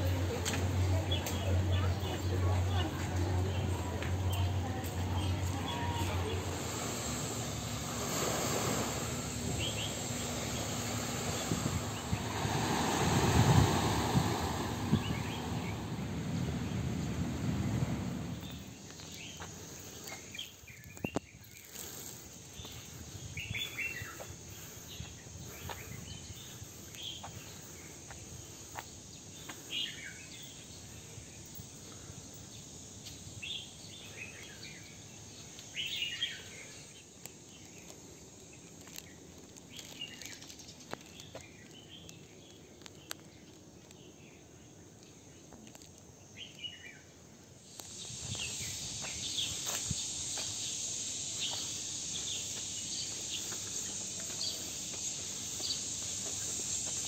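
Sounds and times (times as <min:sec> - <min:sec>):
waves on a beach: 0:06.4 - 0:18.3.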